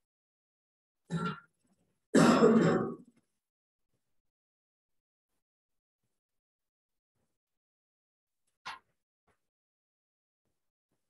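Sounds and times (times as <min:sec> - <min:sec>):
man clearing his throat: 0:02.2 - 0:03.1.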